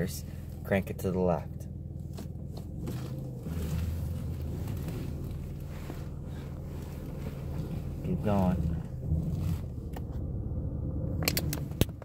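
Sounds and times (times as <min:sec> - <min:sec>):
car engine low hum: 0:00.0 - 0:12.0.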